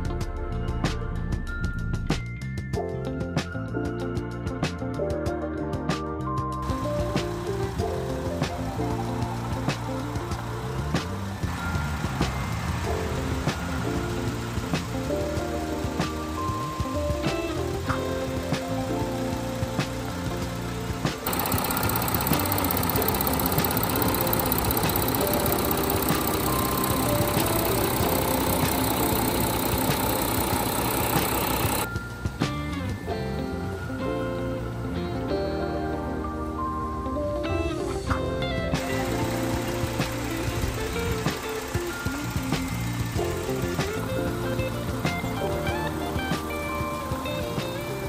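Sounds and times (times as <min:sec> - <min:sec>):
background music: 0:00.0 - 0:48.0
diesel engine idling: 0:06.7 - 0:31.9, 0:39.0 - 0:45.0.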